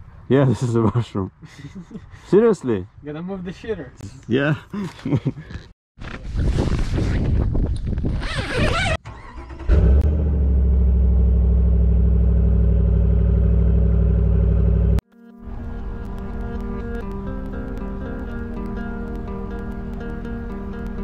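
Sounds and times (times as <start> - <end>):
guitar music: 15.2 - 21.0.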